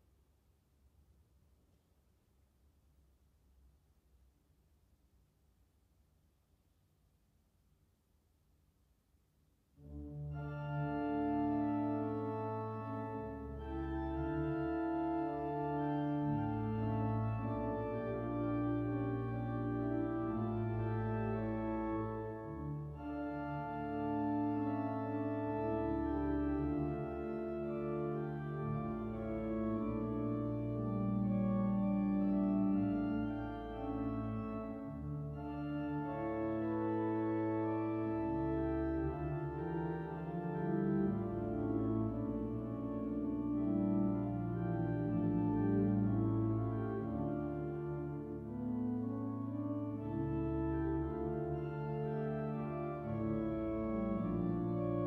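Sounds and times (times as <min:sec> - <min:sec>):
pipe organ chords: 0:09.8 - 0:55.0
deep organ pedal bass: 0:10.0 - 0:55.0.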